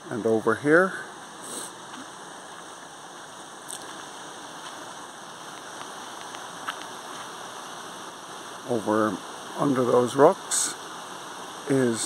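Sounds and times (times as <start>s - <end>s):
waterfall rushing water: 0.0s - 12.0s
faint ticks: 5.5s - 7.3s.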